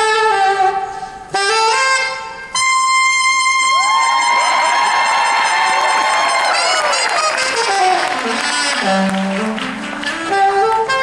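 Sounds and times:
alto saxophone holding high note: 0:00.0 - 0:11.0
audience cheering and shouting: 0:03.7 - 0:08.8.

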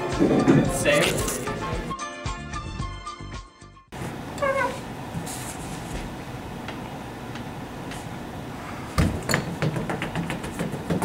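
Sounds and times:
swivel stool squeaking: 0:04.4 - 0:04.9.

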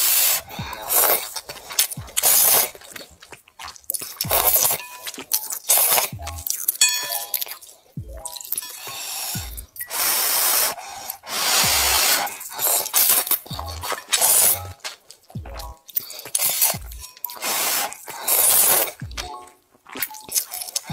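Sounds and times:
wet noodle slurping: 0:00.0 - 0:20.9.

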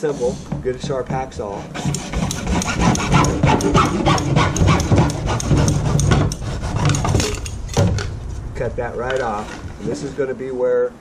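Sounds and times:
hacksaw cutting plastic: 0:00.4 - 0:08.0.

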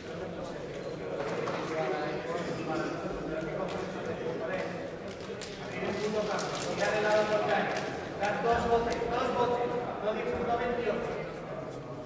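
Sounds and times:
voices calling out in a hall: 0:00.0 - 0:12.0.

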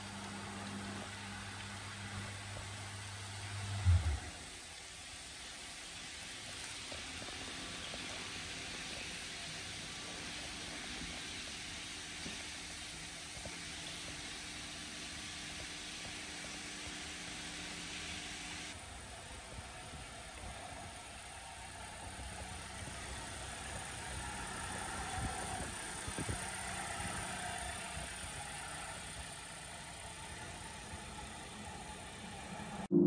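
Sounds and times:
faint steady hiss: 0:00.0 - 0:33.0.

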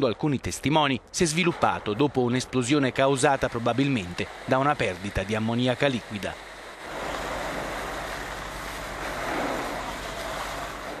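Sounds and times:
steady rushing outdoor noise: 0:00.0 - 0:11.0.

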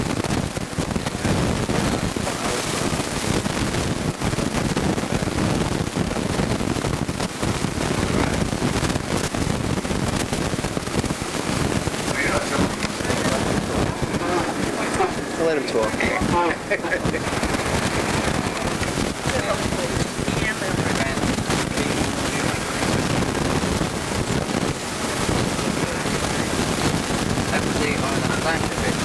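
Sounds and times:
dense steady background noise: 0:00.0 - 0:29.0
indistinct chatter of voices: 0:12.0 - 0:23.1.

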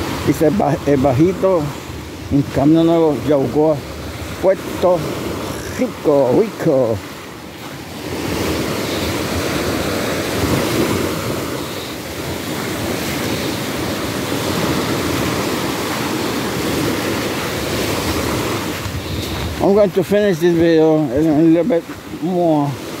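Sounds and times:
small waves washing on sand: 0:00.0 - 0:23.0
wind buffeting microphone: 0:00.0 - 0:23.0.

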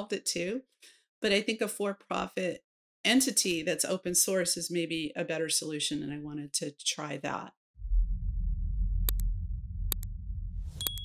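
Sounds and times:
deep steady rumble: 0:07.8 - 0:11.0
high bell ding: 0:10.8 - 0:11.0.

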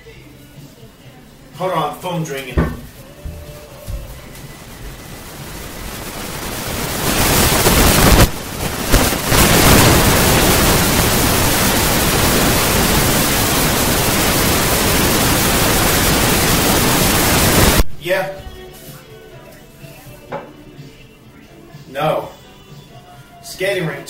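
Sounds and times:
loud static-like hiss: 0:00.0 - 0:24.0.

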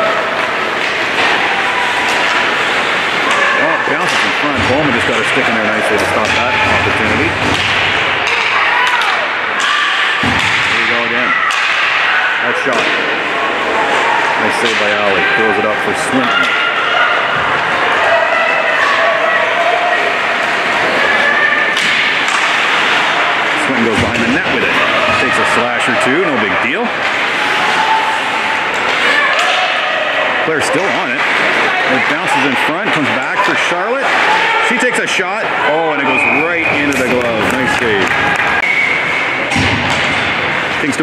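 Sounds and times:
hockey sticks and puck clacking: 0:00.0 - 0:13.2, 0:13.8 - 0:16.7, 0:18.7 - 0:35.2, 0:35.9 - 0:41.0
voices calling out: 0:00.0 - 0:41.0.

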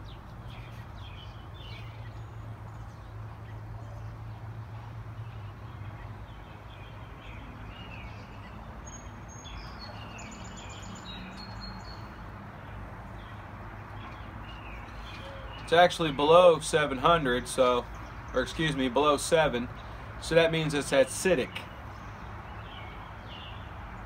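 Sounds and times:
small birds chirping: 0:00.0 - 0:24.0.

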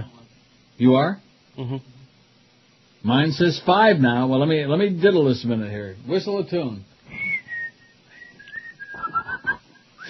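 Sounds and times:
person whistling a tune: 0:07.1 - 0:10.0.

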